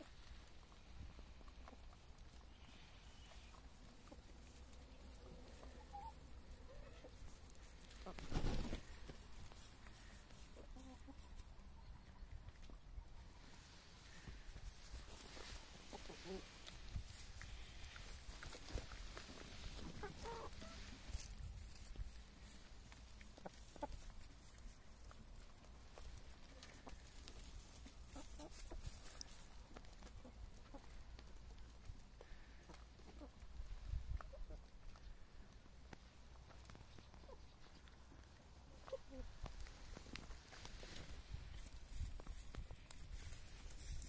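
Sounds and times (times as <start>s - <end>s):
chickens clucking: 0.0s - 44.0s.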